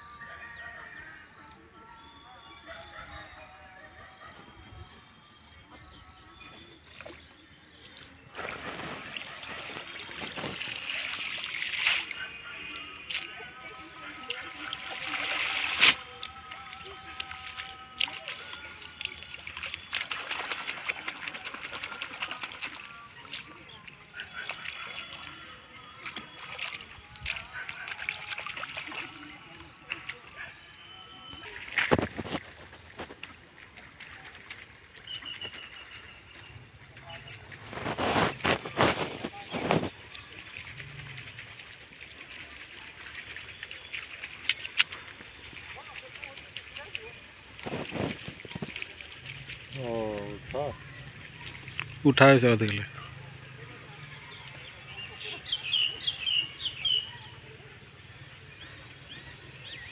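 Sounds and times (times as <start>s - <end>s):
water sloshing and splashing: 4.0s - 59.9s.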